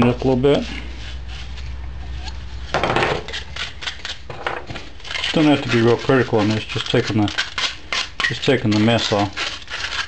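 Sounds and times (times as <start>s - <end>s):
sandpaper rubbing plastic pipe: 0.0s - 10.0s.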